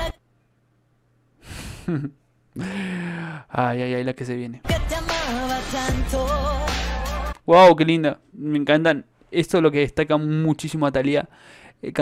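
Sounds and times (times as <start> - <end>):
man sighing: 1.4 - 3.5
music: 4.6 - 7.4.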